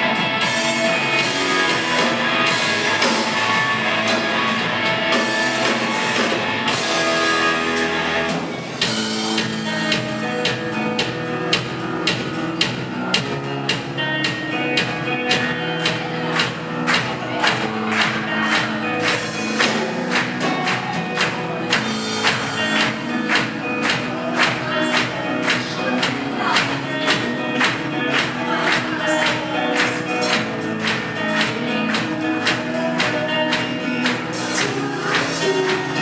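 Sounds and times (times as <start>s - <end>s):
drum kit beat: 0.0s - 36.0s
electric guitars: 0.0s - 36.0s.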